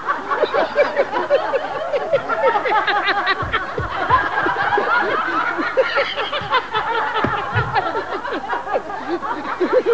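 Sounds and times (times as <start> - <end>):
man giggling: 0.4 - 9.9.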